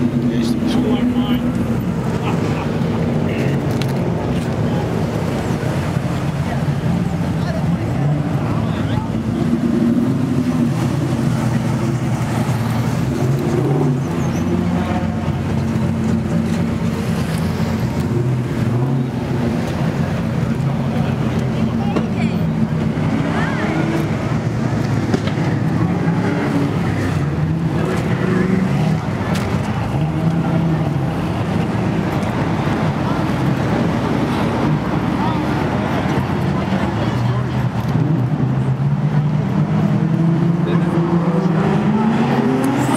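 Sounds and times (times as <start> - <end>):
people talking: 0.0 - 12.4, 19.7 - 24.5, 25.8 - 42.9
car engines idling: 0.0 - 42.9.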